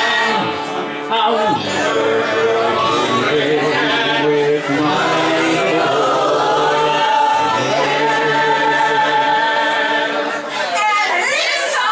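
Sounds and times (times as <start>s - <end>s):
man singing: 0.0s - 9.9s.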